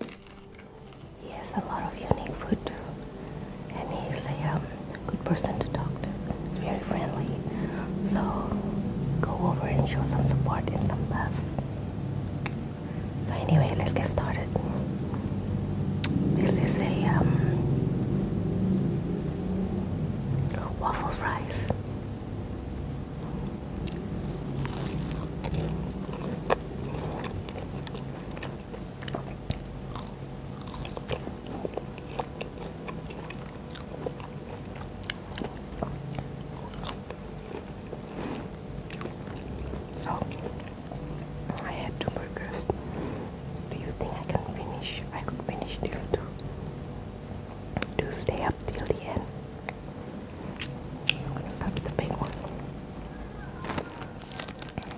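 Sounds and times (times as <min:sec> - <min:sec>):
crisp biting and chewing: 0:00.0 - 0:01.2, 0:23.8 - 0:41.7, 0:53.3 - 0:54.9.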